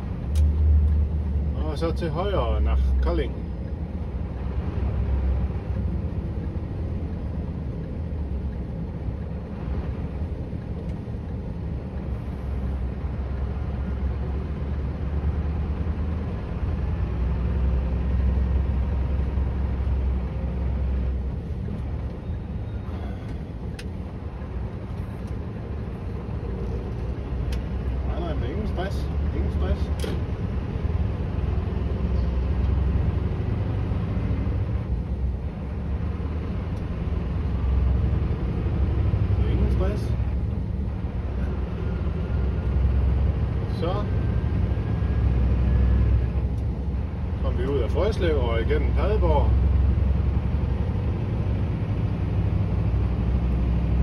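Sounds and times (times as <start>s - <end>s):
truck engine drone: 0.0s - 54.0s
light clicks in cab: 0.3s - 1.0s, 23.2s - 24.0s, 29.9s - 30.2s.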